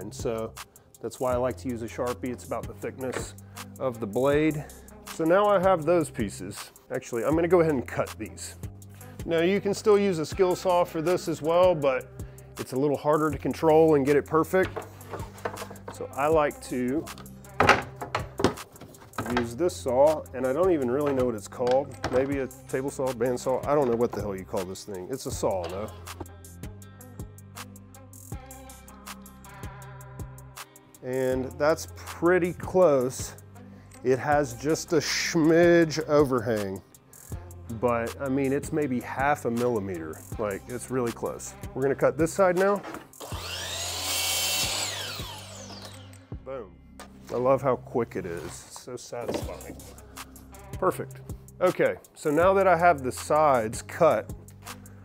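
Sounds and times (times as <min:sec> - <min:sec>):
wooden boards knocking: 0:14.6 - 0:16.0, 0:17.6 - 0:19.5
saw cutting wooden board: 0:42.8 - 0:46.3
miter saw whine: 0:43.2 - 0:46.3.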